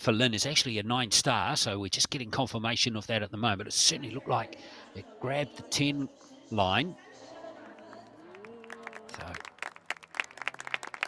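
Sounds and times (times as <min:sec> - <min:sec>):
small crowd clapping: 0:07.5 - 0:11.0.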